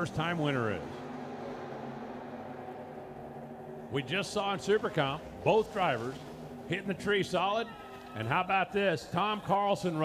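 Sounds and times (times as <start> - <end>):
drag car engines droning: 0.0 - 10.0.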